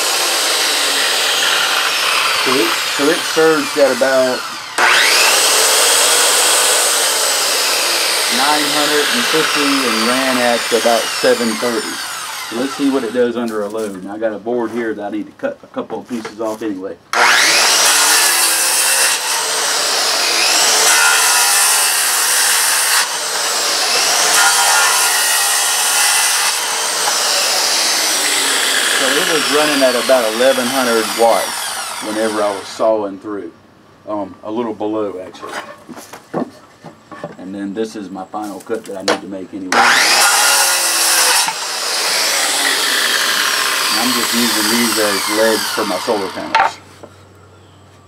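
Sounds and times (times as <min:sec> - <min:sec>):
circular saw motor whine: 0:00.0 - 0:13.1, 0:39.8 - 0:46.6.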